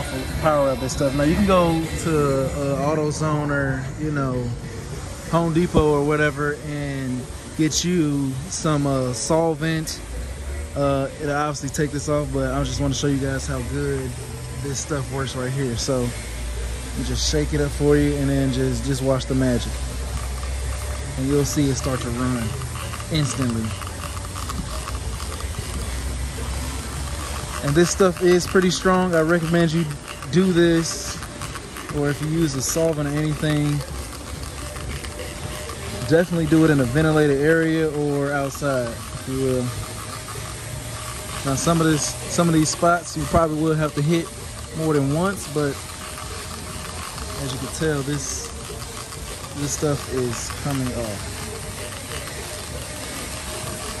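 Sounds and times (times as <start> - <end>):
machine humming: 0.0 - 54.0
liquid spraying: 10.8 - 54.0
spray bottle trigger clicking: 17.0 - 54.0.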